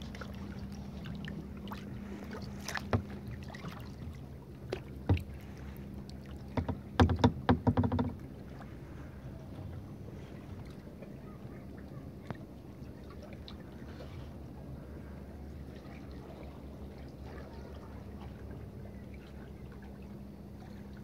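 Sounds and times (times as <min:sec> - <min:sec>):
sharp clicks and splashes: 0:00.0 - 0:08.7
paddle dipping and dripping water: 0:00.0 - 0:21.0
steady low hum: 0:00.0 - 0:21.0.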